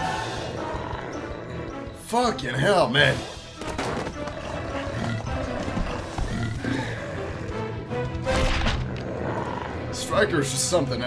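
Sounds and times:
beast-like growling voice: 0.0s - 3.3s, 4.4s - 7.8s, 8.8s - 11.0s
cartoon score music: 0.0s - 11.0s.

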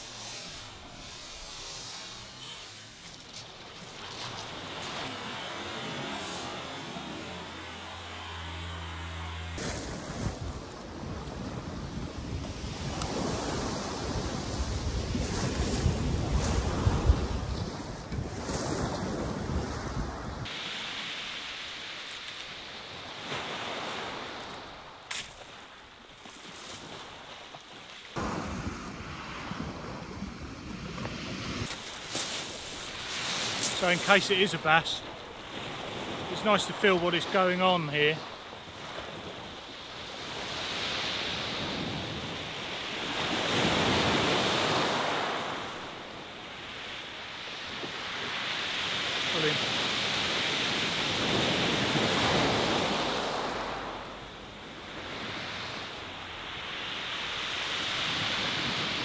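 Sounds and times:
surf on shingle beach: 0.0s - 59.0s.

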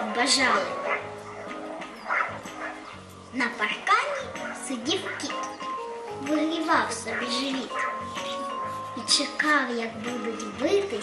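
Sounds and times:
soft cartoon background music: 0.0s - 11.0s
dog bark: 0.8s - 3.0s, 4.4s - 5.5s, 7.1s - 8.4s.

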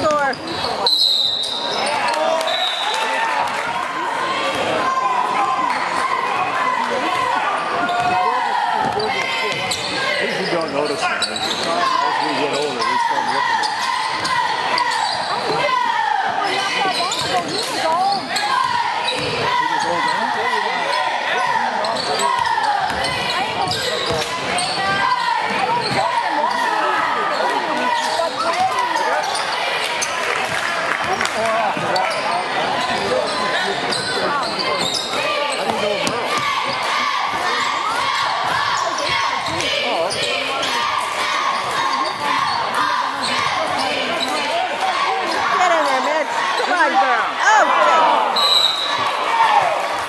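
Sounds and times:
spectators' voices echoing: 0.0s - 50.0s
basketball bouncing on wood court: 21.9s - 26.2s.

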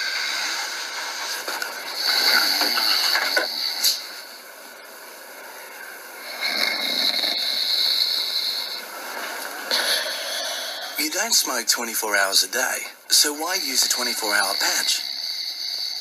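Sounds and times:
person snoring: 0.0s - 4.2s, 6.2s - 11.5s, 13.9s - 16.0s.

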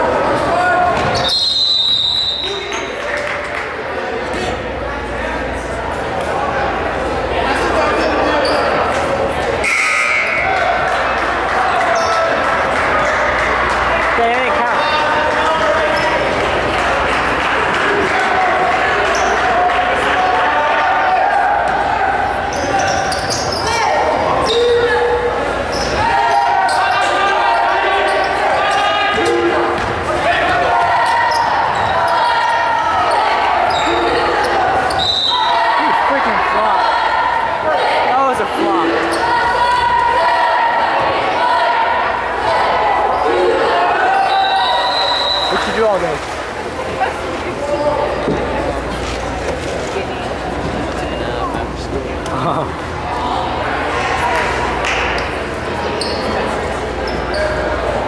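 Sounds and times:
spectators chattering: 0.0s - 58.0s.

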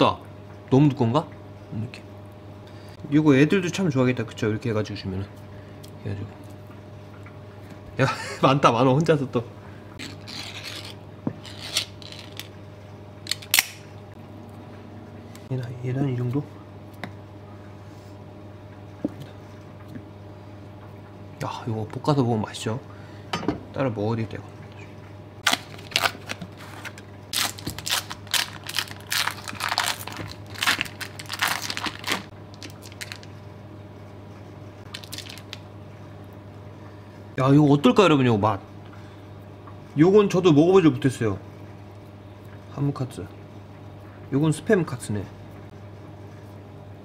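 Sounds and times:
foil wrapper crinkling: 10.0s - 12.6s, 25.4s - 33.4s, 34.9s - 35.6s.

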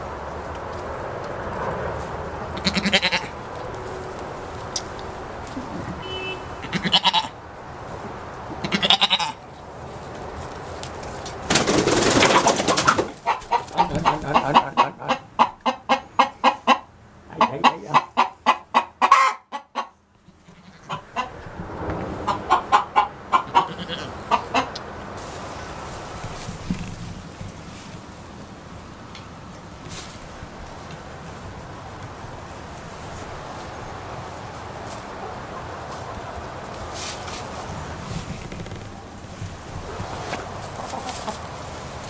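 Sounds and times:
hens clucking: 8.1s - 9.4s, 11.1s - 26.8s, 35.0s - 42.0s.

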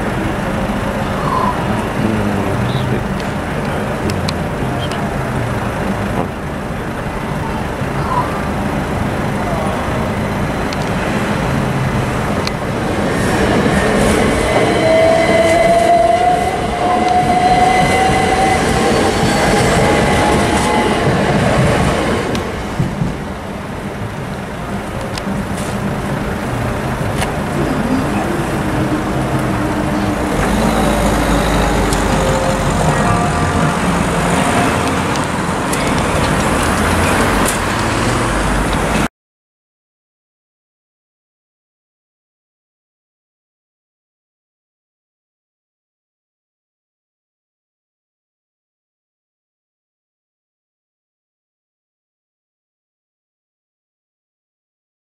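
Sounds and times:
rising whine: 0.0s - 39.1s
road traffic moving: 0.0s - 39.1s
train rumbling over crossing: 0.0s - 39.1s.

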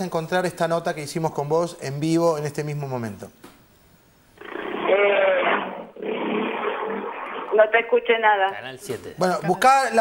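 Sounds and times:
woman's voice over telephone: 7.5s - 8.6s.

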